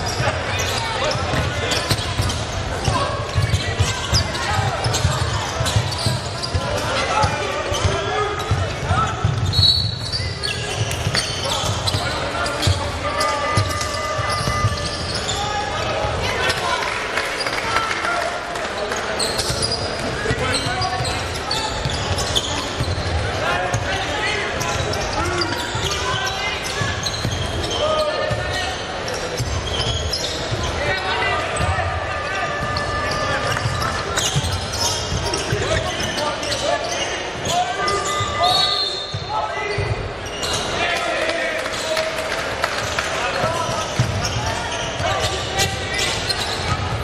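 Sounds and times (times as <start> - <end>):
players and spectators shouting: 0.0 - 47.0.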